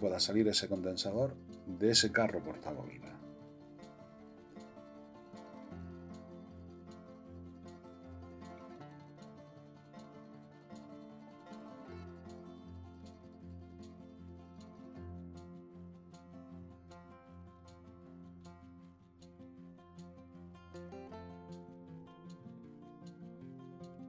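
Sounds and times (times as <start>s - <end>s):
plucked strings: 0.0s - 24.0s
quiet background music: 0.0s - 24.0s.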